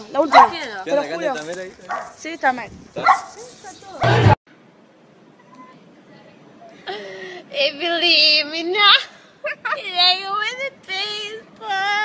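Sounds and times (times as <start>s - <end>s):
quiet background noise: 0.0s - 12.0s
dog barking: 0.3s - 0.6s, 1.9s - 2.2s, 3.0s - 3.4s
loud voices: 3.1s - 4.4s.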